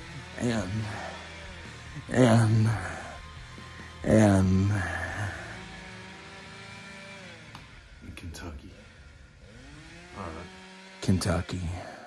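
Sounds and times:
chainsaw engine idling: 0.0s - 12.0s.

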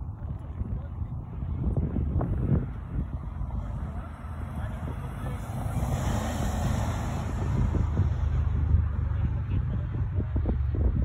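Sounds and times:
wind buffeting microphone: 0.0s - 11.0s
car tyres hissing past: 4.2s - 8.1s.

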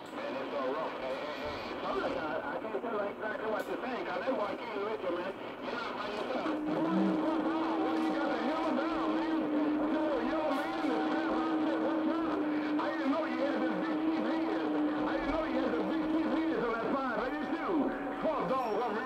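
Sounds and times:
garbled distorted radio speech: 0.1s - 19.0s.

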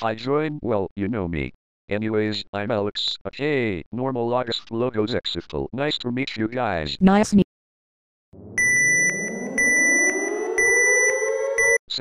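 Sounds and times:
rising pitched tone: 8.4s - 11.8s
high electronic alarm beep: 8.4s - 11.9s.

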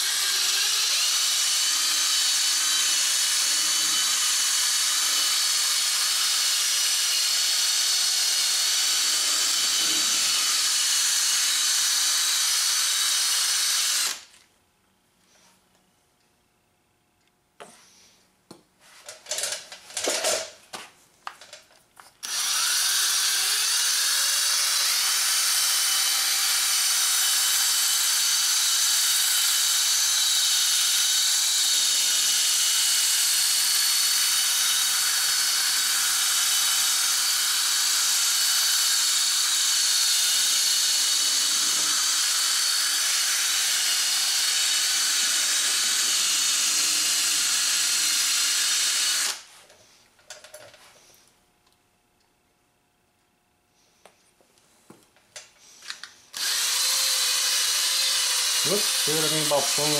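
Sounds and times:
cordless drill whining: 0.0s - 14.4s, 22.2s - 49.5s, 55.7s - 59.9s.

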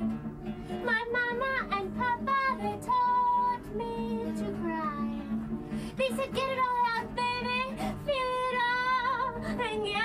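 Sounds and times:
guitar accompaniment: 0.0s - 10.0s.

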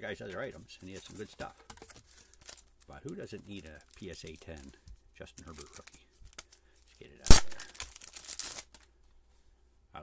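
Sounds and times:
plastic bag crinkling: 0.9s - 4.8s, 7.3s - 8.9s.

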